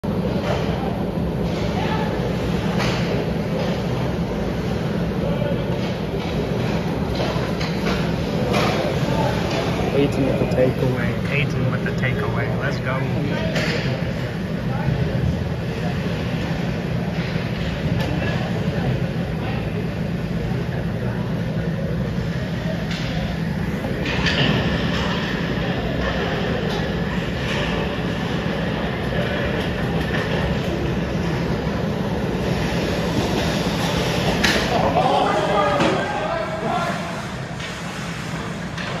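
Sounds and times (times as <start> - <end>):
low rumble in rink: 0.1 - 39.0
hockey sticks and puck clacking: 5.8 - 10.2, 32.3 - 36.2, 36.8 - 39.0
skate blades scraping ice: 32.3 - 35.6
skates on ice: 32.3 - 39.0
sticks hitting puck: 32.6 - 35.0.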